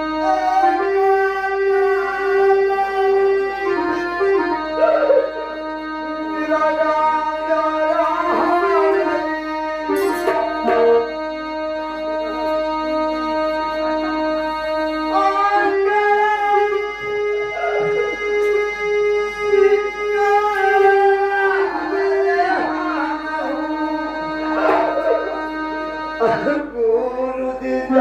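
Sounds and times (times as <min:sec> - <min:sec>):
stage band melody: 0:00.0 - 0:26.8.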